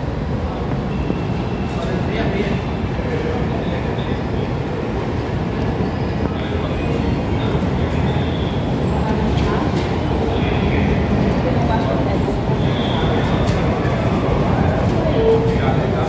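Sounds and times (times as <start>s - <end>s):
metro train rumbling: 0.0s - 16.0s.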